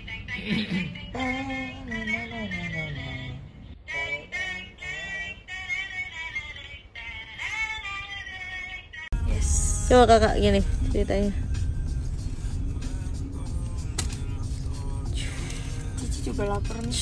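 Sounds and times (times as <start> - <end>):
person singing: 0.0 - 9.9
boy's voice: 1.2 - 3.4
background music: 9.2 - 17.0.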